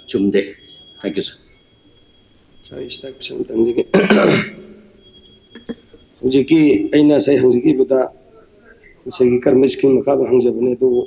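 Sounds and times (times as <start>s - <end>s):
man clearing his throat: 3.9s - 4.8s.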